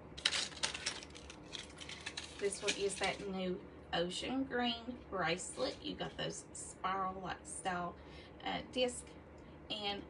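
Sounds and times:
metal jewelry clinking: 0:00.2 - 0:03.2.

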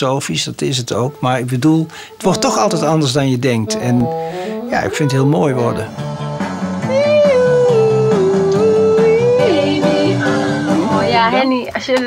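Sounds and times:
song with guitar accompaniment: 0:03.7 - 0:11.7.

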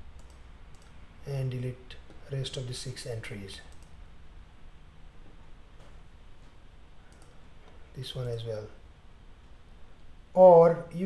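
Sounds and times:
low room hum: 0:00.0 - 0:11.0
computer mouse clicking: 0:00.1 - 0:01.0, 0:03.6 - 0:04.0, 0:07.1 - 0:07.8.

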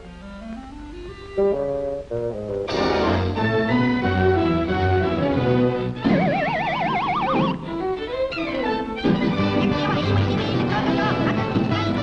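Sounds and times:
orchestral score: 0:01.4 - 0:06.6, 0:07.3 - 0:12.0
wobbling tone rising in pitch: 0:06.1 - 0:07.8.

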